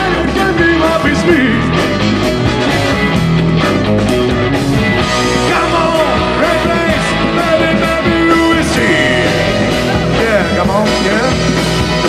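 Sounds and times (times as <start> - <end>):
electric guitar: 0.0 - 12.0
rock band playing: 0.0 - 12.0
steady drum beat: 0.0 - 12.0.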